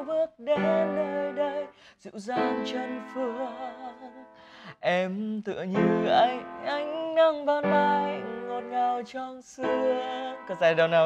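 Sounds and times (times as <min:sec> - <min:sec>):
upright piano melody: 0:00.0 - 0:04.6, 0:05.7 - 0:11.0
man singing: 0:00.0 - 0:11.0.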